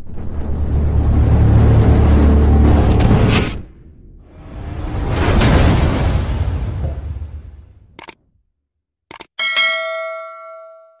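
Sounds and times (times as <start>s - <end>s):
mouse clicks: 9.1s - 9.3s
bell ding ringing: 9.4s - 11.0s.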